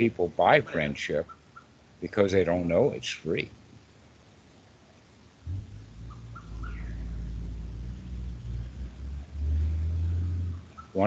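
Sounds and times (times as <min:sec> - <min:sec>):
low rumble: 0:05.4 - 0:10.9
faint high chirps: 0:05.5 - 0:11.0.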